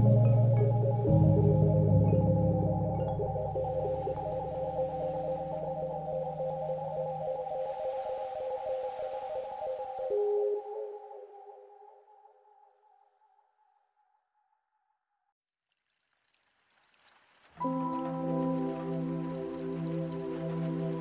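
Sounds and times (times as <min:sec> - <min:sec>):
ambient relaxation music: 0:00.0 - 0:13.0, 0:17.6 - 0:21.0.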